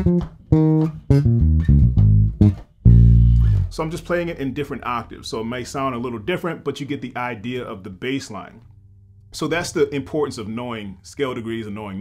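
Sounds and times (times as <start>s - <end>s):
electric bass guitar plucked notes: 0.0s - 10.6s.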